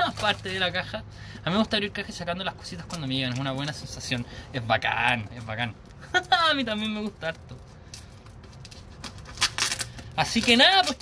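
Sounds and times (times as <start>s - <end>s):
packaging crinkling and tearing: 0.0s - 0.9s, 5.0s - 11.0s
packaging rustling: 0.0s - 0.9s, 5.0s - 11.0s.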